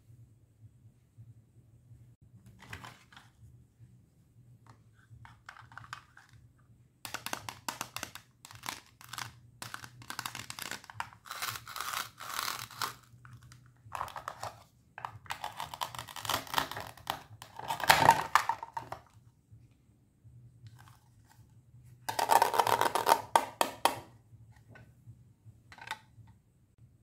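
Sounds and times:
velcro ripping: 8.5s - 13.1s.

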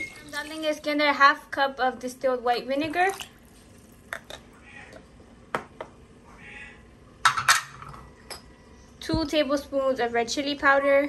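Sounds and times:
kitchen utensils clinking: 7.2s - 8.5s.

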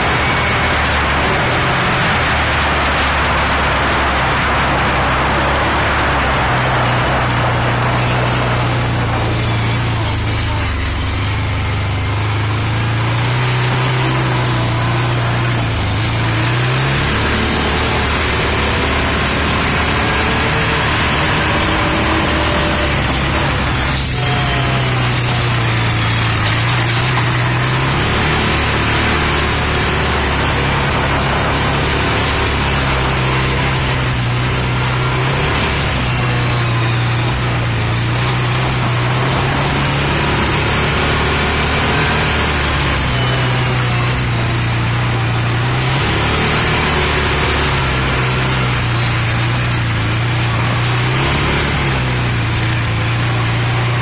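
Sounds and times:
off-road vehicle engine running: 0.0s - 54.0s
rush of noise: 0.0s - 54.0s.

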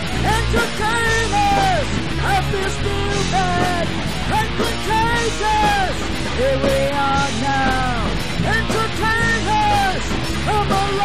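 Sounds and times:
bass guitar: 0.0s - 11.0s
drums: 0.0s - 11.0s.

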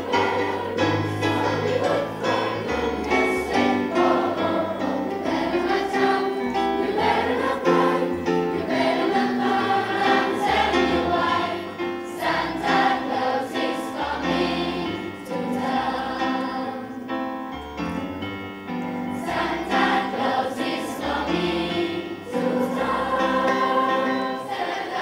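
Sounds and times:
choir singing: 0.0s - 17.5s, 18.8s - 25.0s.

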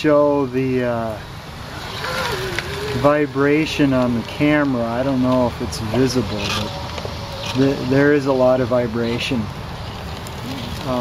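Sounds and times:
track running noise: 1.6s - 11.0s.

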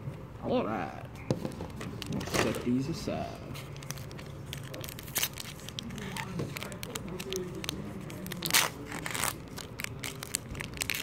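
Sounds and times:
foil wrapper crinkling: 3.6s - 11.0s
foil wrapper ripping: 3.7s - 11.0s.

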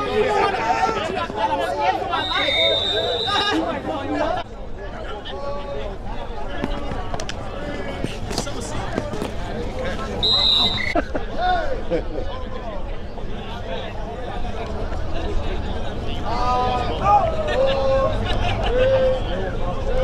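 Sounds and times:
people chattering: 0.0s - 20.0s.

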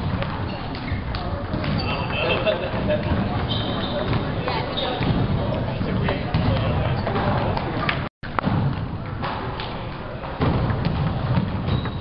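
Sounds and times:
background chatter: 0.3s - 8.1s.

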